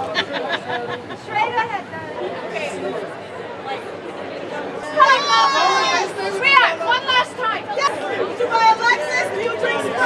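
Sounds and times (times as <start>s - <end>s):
background chatter: 0.0s - 10.0s
people talking and calling out: 0.0s - 10.0s.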